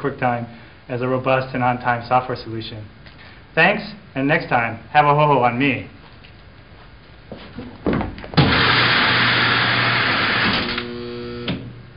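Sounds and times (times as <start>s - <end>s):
loud steady hiss: 8.4s - 11.9s.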